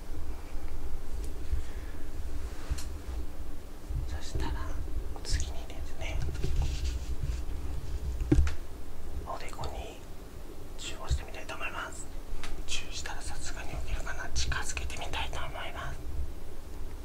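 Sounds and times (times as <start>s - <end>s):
man whispering: 4.0s - 6.3s, 9.2s - 10.1s, 10.8s - 12.1s, 12.7s - 16.0s.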